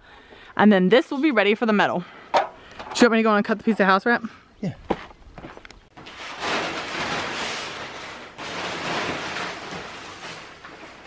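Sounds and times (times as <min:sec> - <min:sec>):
plastic sheet rustling and crinkling: 0:05.9 - 0:11.0.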